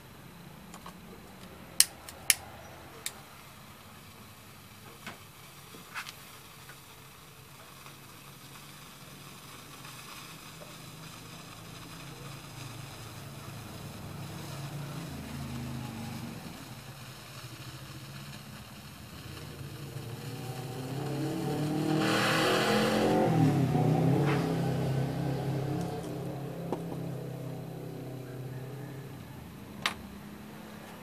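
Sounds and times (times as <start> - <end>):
brief hiss: 1.9 - 31.0
passing vehicle engine: 11.0 - 31.0.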